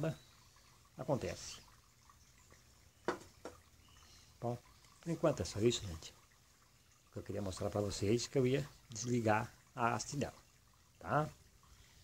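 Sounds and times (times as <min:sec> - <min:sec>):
flower pot set down on marble: 0:03.0 - 0:03.6.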